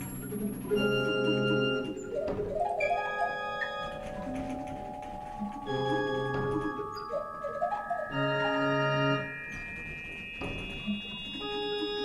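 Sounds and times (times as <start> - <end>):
pipe organ tones: 0.3 - 12.0.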